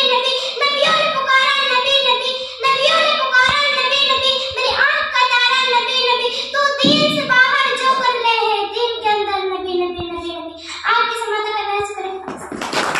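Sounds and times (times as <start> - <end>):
girl singing into microphone: 0.0 - 12.6.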